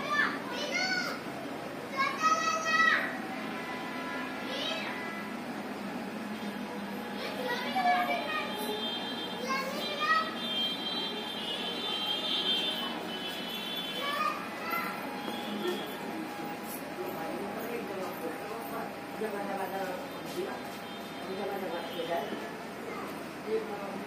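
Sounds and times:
child's high-pitched call: 0.0s - 1.3s, 1.9s - 3.4s, 4.1s - 5.3s, 7.1s - 15.9s
children calling and chattering: 0.0s - 24.0s.

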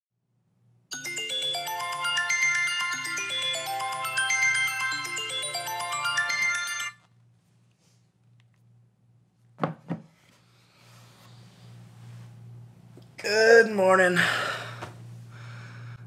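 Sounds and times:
phone alarm chiming melody: 0.9s - 7.0s.

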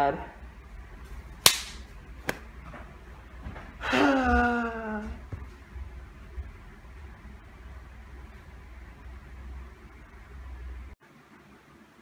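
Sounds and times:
sharp slaps: 1.4s - 2.5s.

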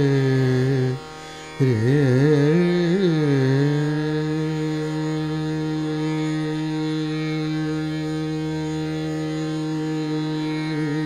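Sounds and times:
tanpura drone: 0.0s - 11.0s.

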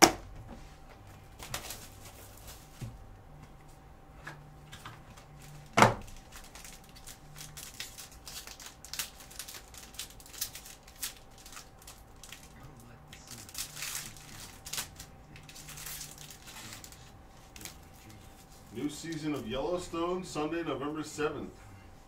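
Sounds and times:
shrink wrap crinkling and tearing: 1.4s - 2.7s, 4.8s - 19.6s.

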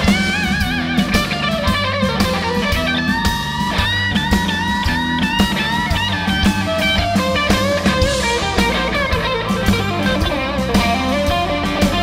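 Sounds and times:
electric guitar bent notes: 0.0s - 12.0s
live band playing: 0.0s - 12.0s.

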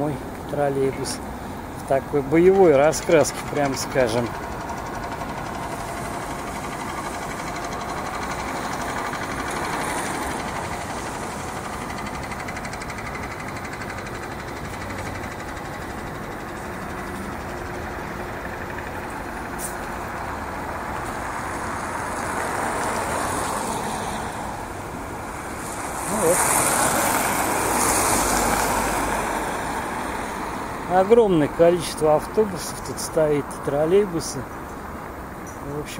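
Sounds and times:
street traffic noise: 0.0s - 35.9s
vehicle passing loudly: 2.4s - 32.2s.

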